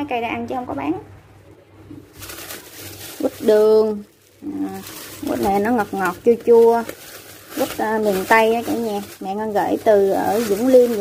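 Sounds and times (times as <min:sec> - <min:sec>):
plastic bag crinkling: 0:02.0 - 0:11.0.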